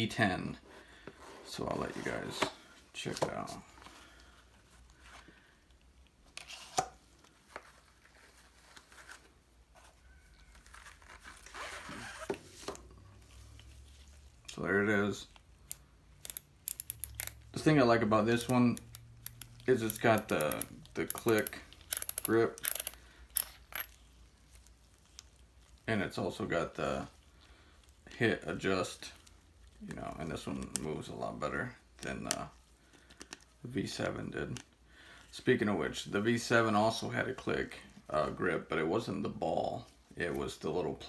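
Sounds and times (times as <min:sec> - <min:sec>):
cardboard and paper rustling: 0:06.4 - 0:14.4.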